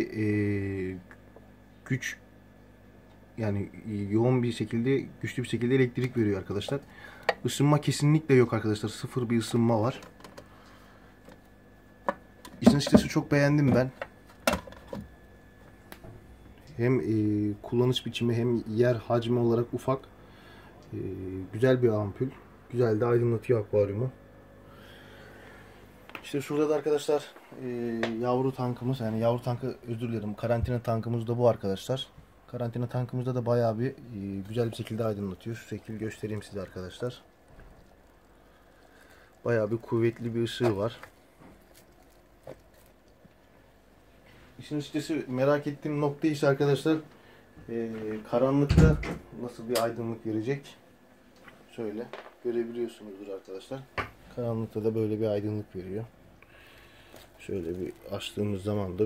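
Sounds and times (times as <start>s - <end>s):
faint background hum: 0.0s - 59.0s.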